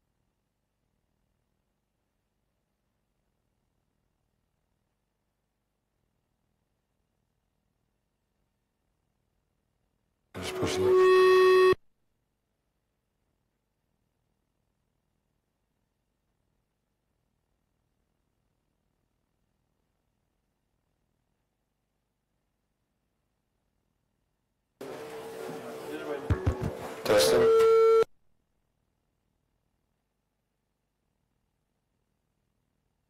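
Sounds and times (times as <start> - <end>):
loud electronic beep: 10.4 - 11.8
microphone handling thumps: 26.3 - 27.0.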